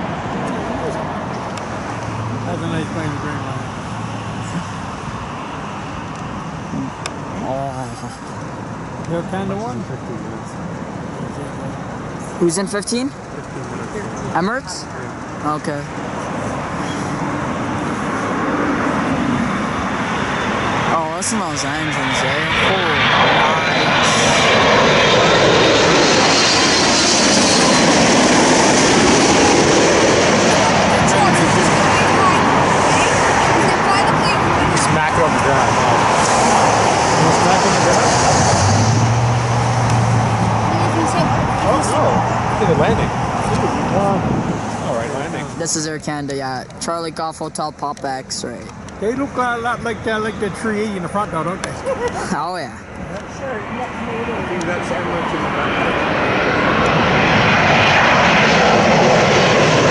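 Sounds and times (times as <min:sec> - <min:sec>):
high turbine whine: 0:00.0 - 0:59.9
jet engine noise: 0:00.0 - 0:59.9.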